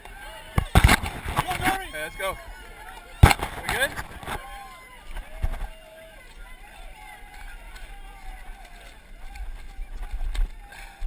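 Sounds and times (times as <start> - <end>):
distant voices shouting: 0.0 - 11.0
footsteps running through mud: 0.6 - 11.0.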